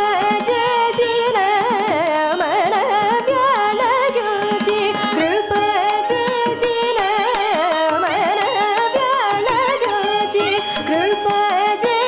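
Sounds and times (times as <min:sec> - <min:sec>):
violin: 0:00.0 - 0:12.0
woman singing with ornaments: 0:00.0 - 0:12.0.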